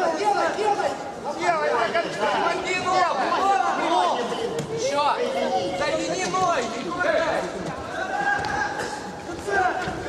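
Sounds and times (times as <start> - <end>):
crowd chattering and calling out: 0.0 - 10.0.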